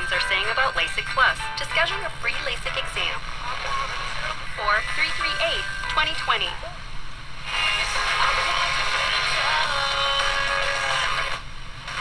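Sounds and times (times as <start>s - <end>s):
classical music on small radio speaker: 0.0s - 6.8s, 7.5s - 12.0s.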